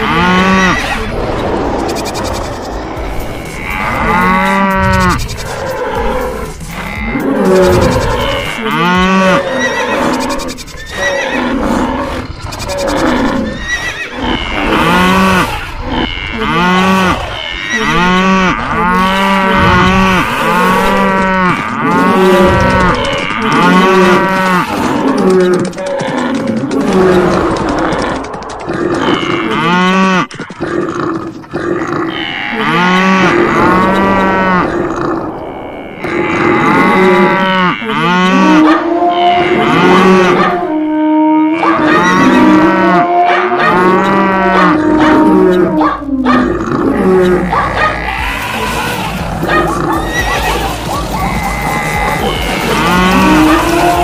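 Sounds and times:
herd of animals mooing: 0.0s - 30.3s, 31.0s - 54.0s.

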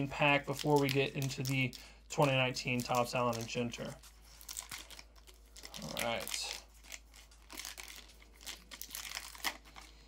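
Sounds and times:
card pack wrapper crinkling: 0.0s - 10.0s.

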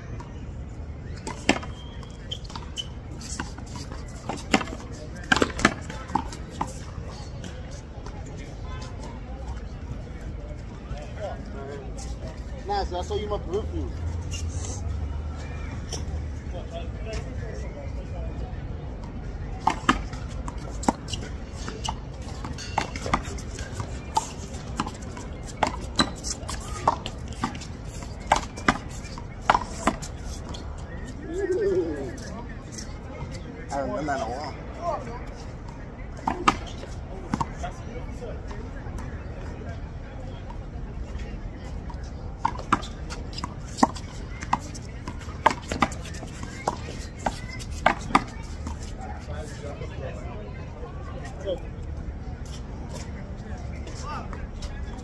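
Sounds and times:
faint voices: 0.0s - 55.0s.

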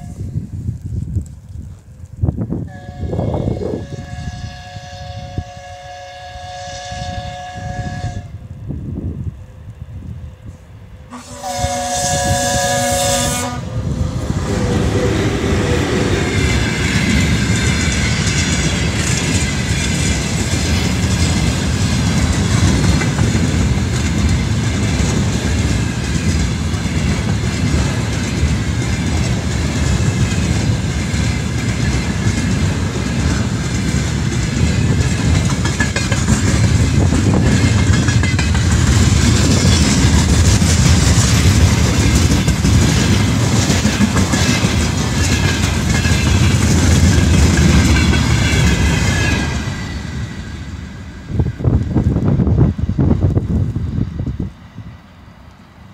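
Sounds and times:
freight train wheels rumbling: 0.0s - 55.9s
wheels clacking over rail joints: 14.7s - 50.9s.

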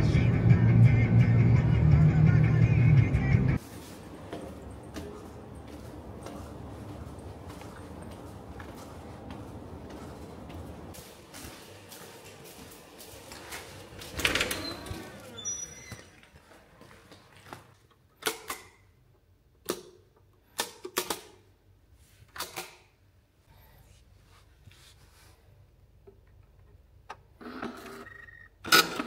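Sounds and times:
steady background noise: 0.0s - 27.2s.

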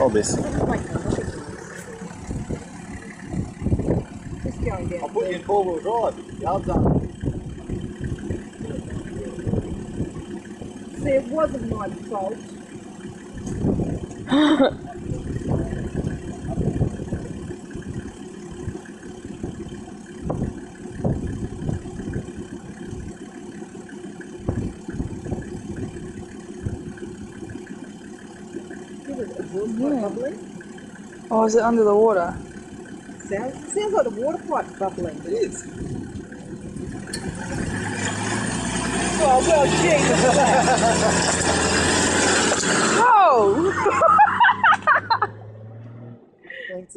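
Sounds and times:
engine idling: 0.0s - 45.7s
tyres churning through mud: 0.0s - 46.0s
vehicle engine driving past: 28.3s - 46.7s.

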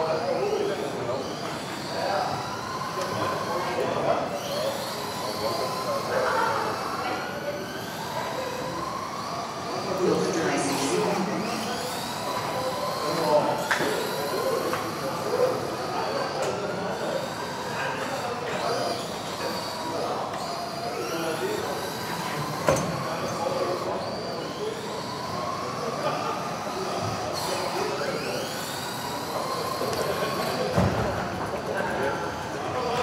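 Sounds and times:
rc car motors whining: 0.0s - 33.0s.

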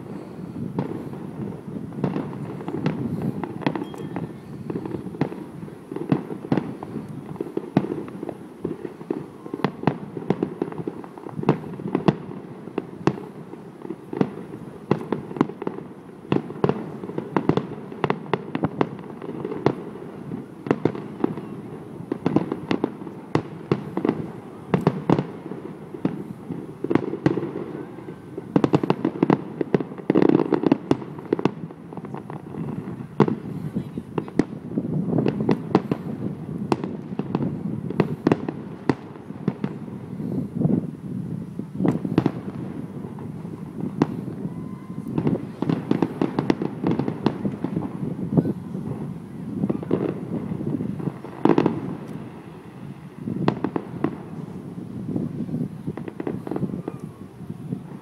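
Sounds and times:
fireworks bangs and crackles: 0.0s - 58.0s.

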